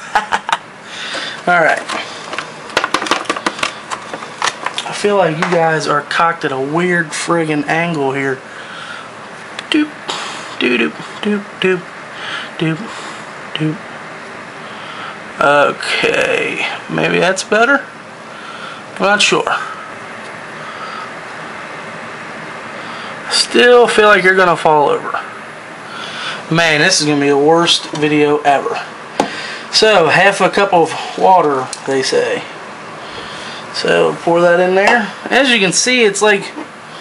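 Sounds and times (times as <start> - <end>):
room noise hiss: 0.0 - 37.0.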